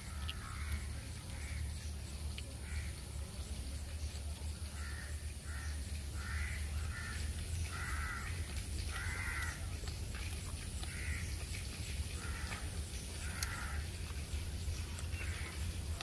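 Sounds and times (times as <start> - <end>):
crows cawing: 0.0 - 1.7, 2.6 - 3.0, 4.7 - 9.8, 10.8 - 11.5, 12.1 - 14.0, 15.2 - 15.7
steady low hum: 0.0 - 16.0.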